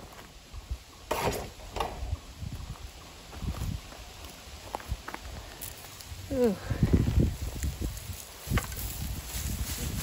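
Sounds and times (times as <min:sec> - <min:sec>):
plants and soil rustling: 0:02.4 - 0:10.0.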